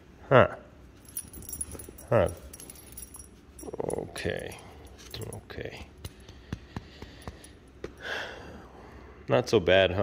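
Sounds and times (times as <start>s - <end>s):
dog collar and tags jingling: 1.0s - 5.8s.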